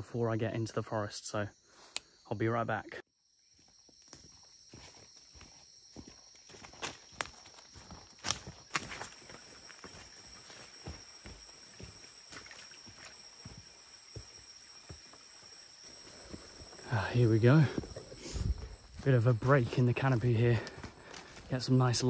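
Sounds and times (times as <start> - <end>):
high insect trill: 0.0 - 22.0
footsteps on leafy dirt trail: 3.5 - 22.0.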